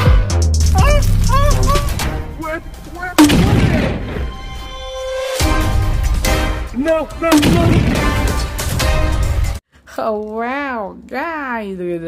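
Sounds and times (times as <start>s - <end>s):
background music: 0.0s - 9.6s
vocal cry with bending pitch: 0.6s - 3.9s
gunfire and explosion blasts: 3.2s - 4.4s, 7.3s - 8.7s.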